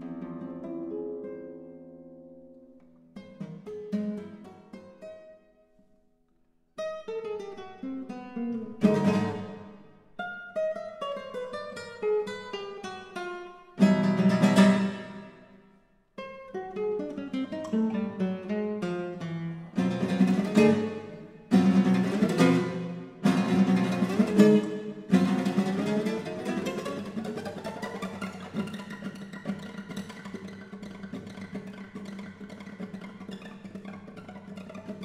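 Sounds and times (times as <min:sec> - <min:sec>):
acoustic guitar playing: 0:00.0 - 0:05.9, 0:06.8 - 0:35.0
loud strummed guitar chords: 0:19.8 - 0:31.5.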